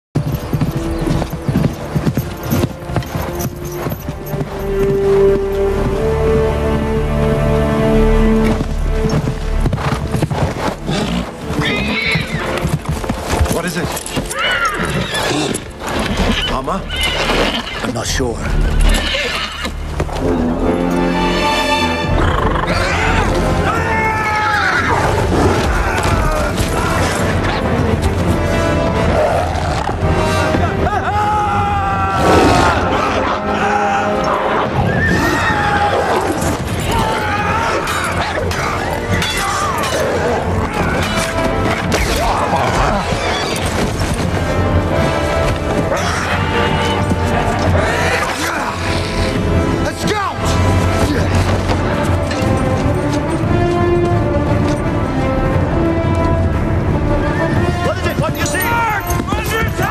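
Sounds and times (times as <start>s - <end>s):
horse hooves clip-clopping: 0.2s - 22.4s, 23.4s - 31.1s, 35.7s - 59.9s
loud film music: 0.2s - 59.9s
horse whinnying: 10.8s - 12.8s, 14.0s - 20.4s, 21.3s - 27.7s, 31.9s - 44.2s, 45.9s - 49.6s.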